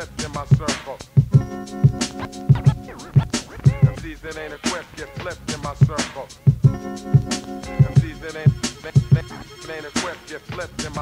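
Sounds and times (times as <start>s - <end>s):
hip hop beat: 0.0s - 11.0s
record scratching: 0.4s - 6.2s, 7.1s - 11.0s.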